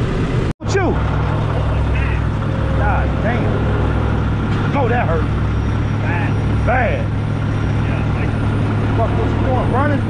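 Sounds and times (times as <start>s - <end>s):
heavy diesel equipment rumbling: 0.0s - 10.0s.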